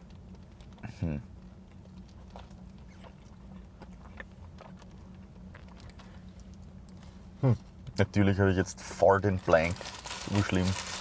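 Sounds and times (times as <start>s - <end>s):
car cabin hum: 0.0s - 11.0s
paper wrapper rustling: 9.4s - 11.0s.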